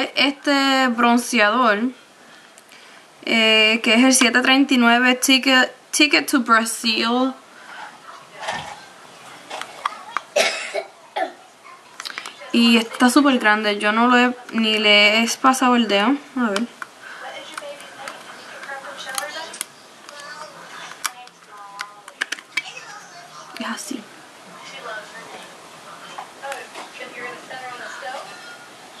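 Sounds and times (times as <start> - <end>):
person coughing: 10.3 - 11.4
plastic compact clicking: 17.5 - 20.2.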